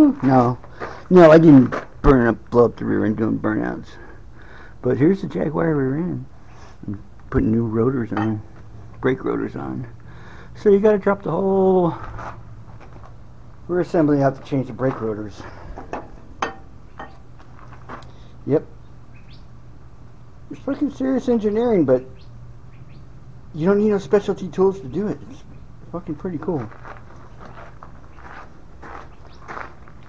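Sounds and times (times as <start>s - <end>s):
footsteps on gravel: 0.0s - 2.0s, 11.9s - 16.3s, 17.0s - 18.2s, 26.3s - 30.0s
steady low background noise: 0.0s - 30.0s
steady low hum: 0.0s - 30.0s.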